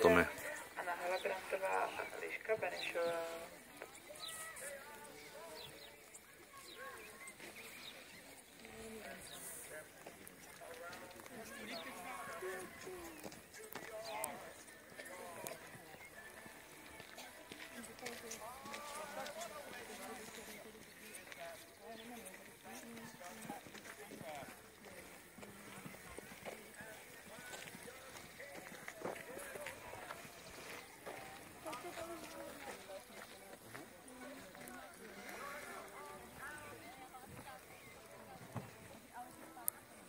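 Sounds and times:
people talking: 0.0 - 40.0
pony hoofbeats on sand: 10.2 - 39.4.

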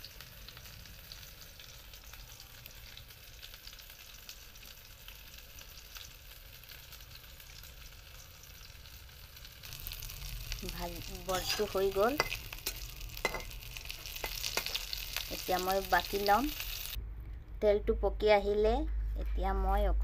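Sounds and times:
crackling and sizzling of cooking: 0.0 - 17.0
low rumble: 9.6 - 20.0.

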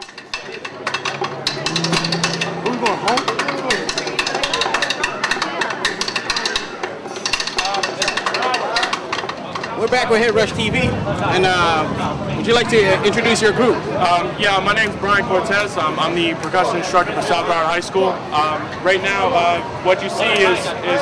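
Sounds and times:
voices: 0.6 - 6.8.

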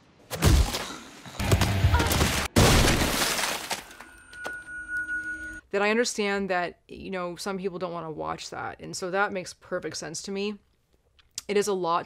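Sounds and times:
crashing shattering noise: 1.4 - 4.2
high-pitched ringing tone: 3.9 - 5.6.

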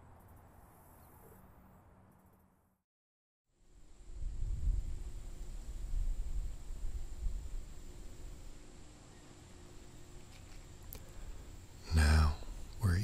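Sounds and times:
wind buffeting microphone: 4.1 - 7.8.

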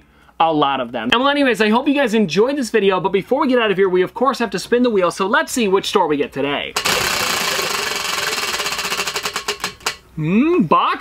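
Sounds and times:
prize wheel pointer clicking: 6.7 - 10.0.

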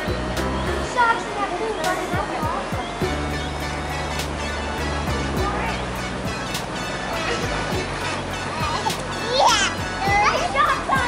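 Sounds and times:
background music with steady beat: 0.0 - 11.0
toddler squealing and babbling: 8.3 - 11.0.

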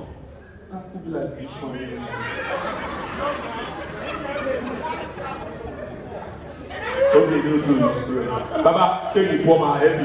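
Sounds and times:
audience chatter: 0.0 - 10.0.

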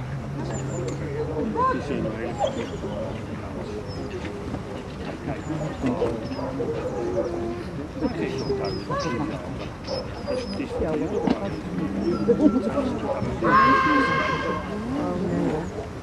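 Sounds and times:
low murmur of voices: 0.0 - 16.0
birds chirping: 0.4 - 14.8.

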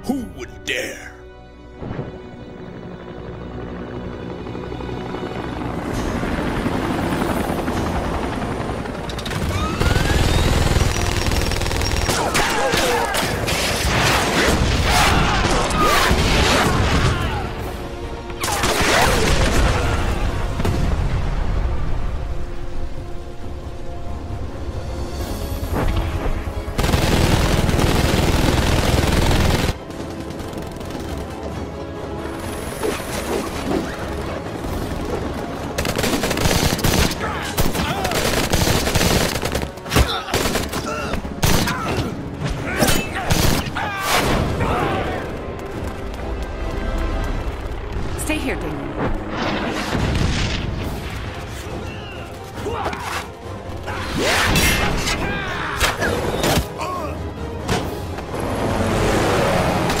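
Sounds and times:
film score: 0.0 - 60.0
rapid machine-gun fire: 9.2 - 12.8, 26.7 - 31.6, 34.0 - 40.8.

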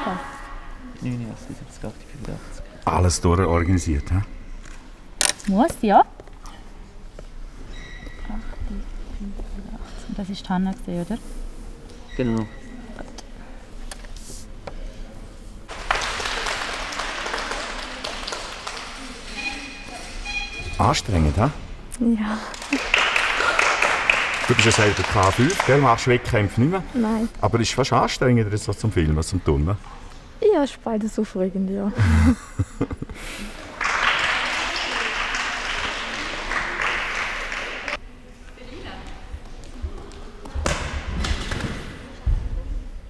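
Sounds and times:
applause: 15.7 - 19.4, 22.4 - 26.3, 33.6 - 38.0.

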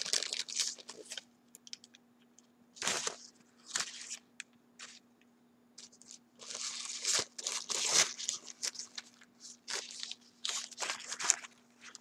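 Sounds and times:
paper wrappers crinkling and tearing: 0.0 - 1.2, 2.8 - 4.2, 5.8 - 12.0.

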